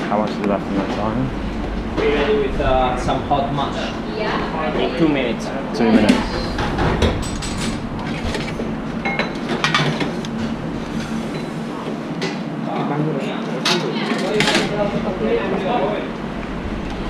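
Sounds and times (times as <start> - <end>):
steady low hum: 0.0 - 13.4, 14.2 - 17.0
metal trays and utensils clattering: 5.9 - 10.2.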